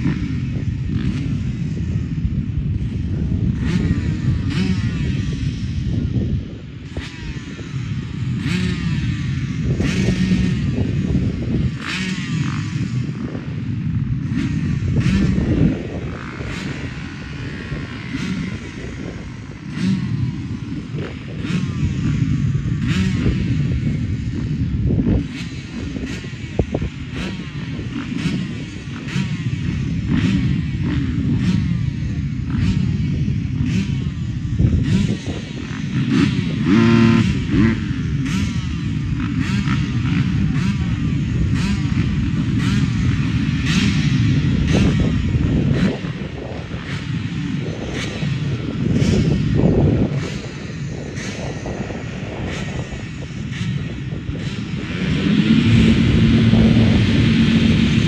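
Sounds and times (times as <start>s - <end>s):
motocross bikes revving: 0.0s - 58.0s.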